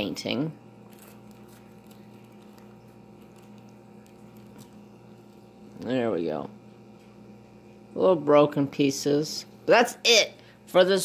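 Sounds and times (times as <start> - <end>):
steady low hum: 0.0 - 11.0
plastic bag crinkling: 0.8 - 5.5.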